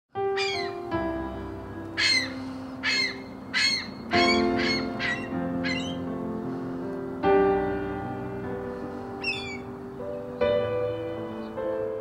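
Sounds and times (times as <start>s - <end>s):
background music with sustained notes: 0.1s - 12.0s
gull calling: 0.2s - 0.8s, 2.0s - 6.0s, 9.2s - 9.7s.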